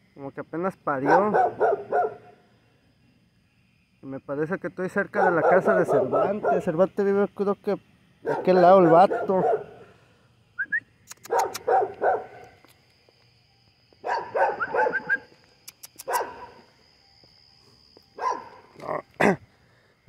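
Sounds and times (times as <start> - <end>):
dog barking: 1.0 - 2.4, 5.2 - 6.8, 8.2 - 9.8, 11.2 - 12.4, 14.0 - 15.2, 16.0 - 16.6, 18.2 - 18.6.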